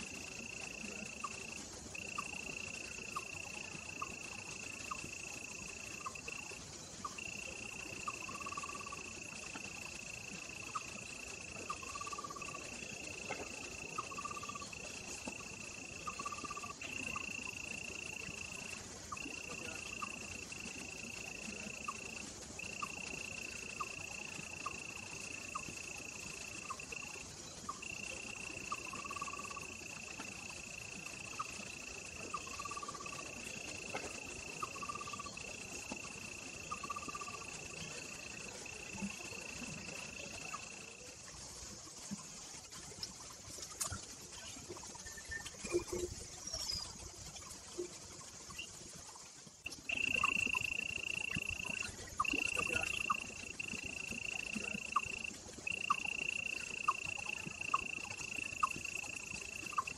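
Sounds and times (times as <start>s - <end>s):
insect chirping calls: 0.0s - 59.9s
insect drone: 0.0s - 59.9s.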